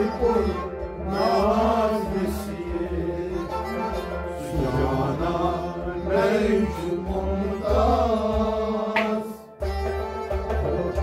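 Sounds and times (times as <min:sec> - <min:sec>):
man singing: 0:00.0 - 0:09.5
harmonium: 0:00.0 - 0:11.0.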